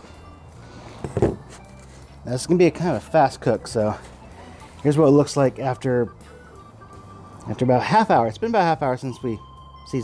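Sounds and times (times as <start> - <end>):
sustained tone background music: 0.0 - 10.0.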